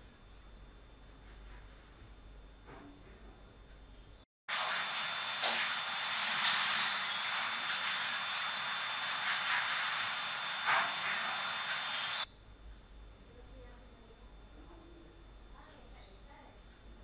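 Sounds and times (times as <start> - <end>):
loud recording hiss: 4.5 - 12.3
thin high whine: 4.5 - 12.3.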